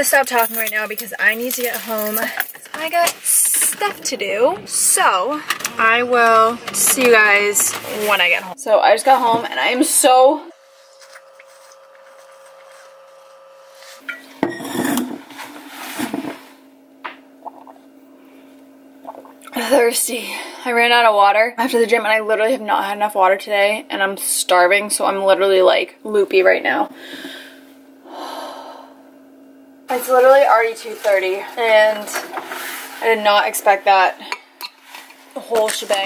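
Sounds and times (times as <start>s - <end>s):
woman speaking: 0.0s - 10.5s, 19.6s - 26.9s, 29.9s - 32.2s, 33.0s - 34.2s, 35.4s - 36.0s
faint steady hum: 0.0s - 36.0s
person gulping from bottle: 17.4s - 17.8s, 19.0s - 19.6s.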